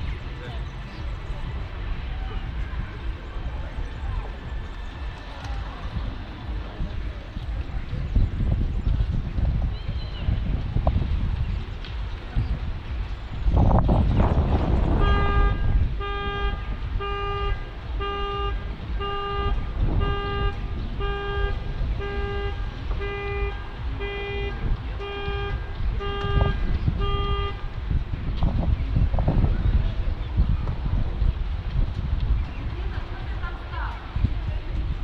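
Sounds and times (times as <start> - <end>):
wind rumble on microphone: 0.0 - 35.0
horn-like alarm tone: 14.8 - 27.7.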